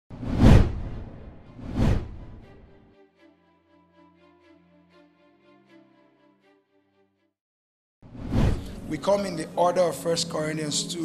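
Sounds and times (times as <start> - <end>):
whoosh sound effects: 0.1 - 2.4, 8.1 - 8.8.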